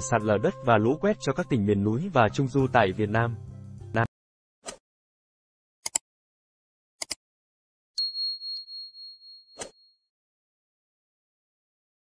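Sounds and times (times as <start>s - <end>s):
high bell ding: 8.0s - 9.7s.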